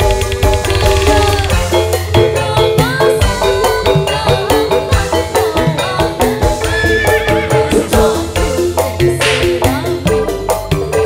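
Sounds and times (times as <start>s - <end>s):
hand drums beating quick rhythm: 0.0s - 1.9s
band playing instrumental: 0.0s - 2.2s
keyboard melody: 0.0s - 11.0s.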